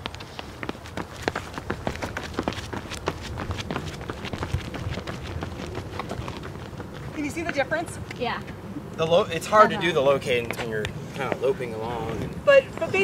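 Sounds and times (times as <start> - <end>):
running footsteps on concrete: 0.0 - 8.6, 9.8 - 13.0.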